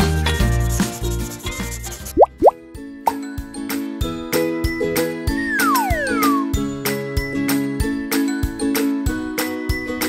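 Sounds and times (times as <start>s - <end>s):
rising plop sound effects: 2.2s - 2.6s
children's background music: 3.1s - 10.0s.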